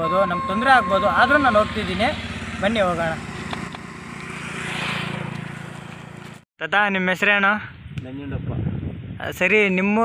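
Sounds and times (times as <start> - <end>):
vehicle engine passing by: 0.2 - 6.4.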